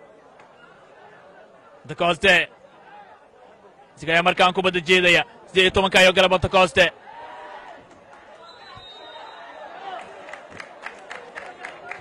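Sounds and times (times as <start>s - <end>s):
chatter of scattered voices: 0.0s - 5.6s.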